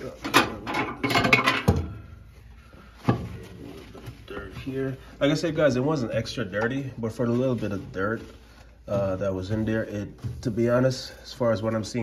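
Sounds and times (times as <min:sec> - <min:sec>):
paper towel scrubbing: 0:07.0 - 0:12.0.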